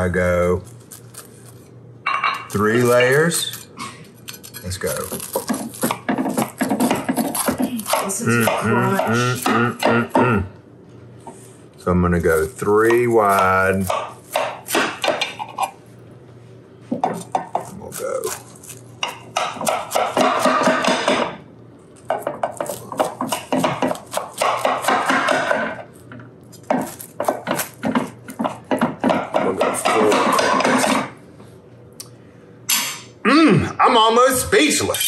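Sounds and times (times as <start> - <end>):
knife sawing through crust: 4.3 - 9.4.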